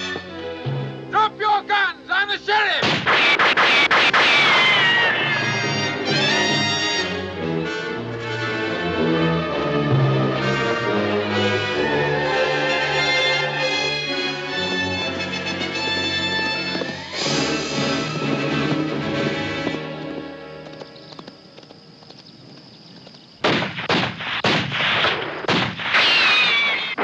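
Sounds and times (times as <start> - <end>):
film score music: 0.0 - 22.8
gunshots: 2.8 - 6.4, 23.4 - 27.0
ricochet whine: 2.8 - 7.1, 23.4 - 27.0.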